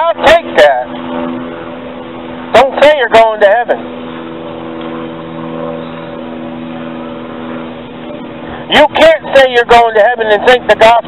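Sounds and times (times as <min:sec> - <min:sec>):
engine running steadily: 0:00.0 - 0:11.0.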